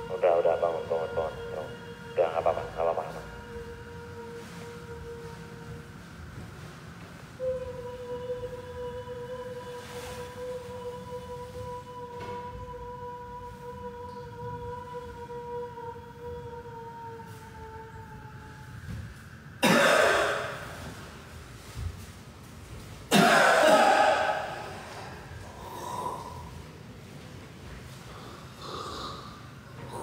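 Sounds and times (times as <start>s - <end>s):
steady hum-like tone: 0.0s - 30.0s.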